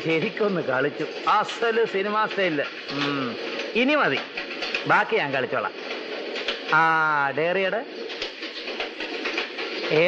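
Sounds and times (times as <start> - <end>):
man making wordless sounds: 1.3 - 4.2.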